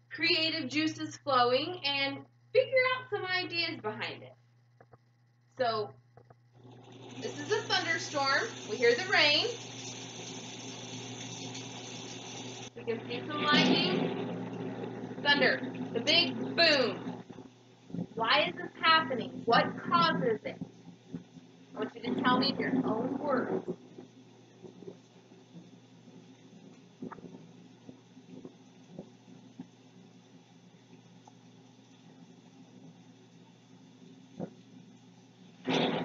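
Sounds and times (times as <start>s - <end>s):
rain hiss through television speakers: 0.0s - 36.0s
thunderstorm through television speaker: 7.1s - 9.9s, 12.7s - 17.2s, 18.0s - 20.7s, 21.8s - 23.8s, 35.6s - 36.0s.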